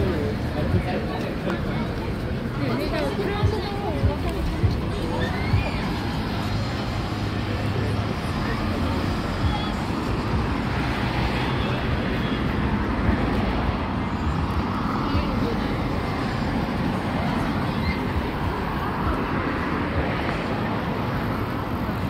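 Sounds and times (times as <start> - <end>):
people talking: 0.0 - 12.4, 14.9 - 22.0
traffic noise: 0.0 - 22.0.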